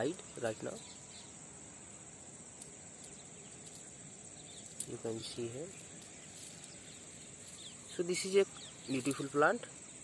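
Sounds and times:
insects trilling: 0.0 - 10.0
low outdoor background noise: 0.0 - 10.0.

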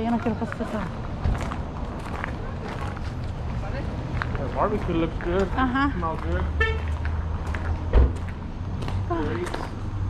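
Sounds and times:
footsteps on gravel: 0.1 - 9.8.

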